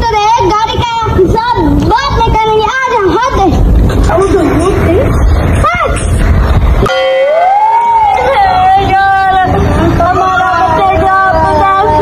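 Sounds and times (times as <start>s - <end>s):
low rumbling noise: 0.0s - 12.0s.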